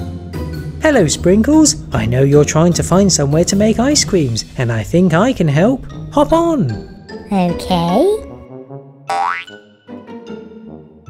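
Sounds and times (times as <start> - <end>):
light background music: 0.0 - 11.0
cartoon jump rising tone: 9.1 - 9.5.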